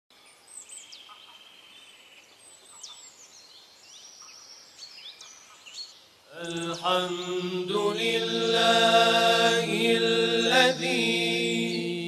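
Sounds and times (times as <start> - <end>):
songbirds chirping and whistling: 0.2 - 8.9, 9.7 - 12.0.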